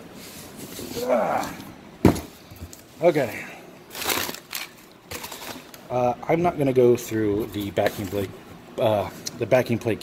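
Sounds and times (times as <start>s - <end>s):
packing paper crinkling: 3.9s - 5.8s.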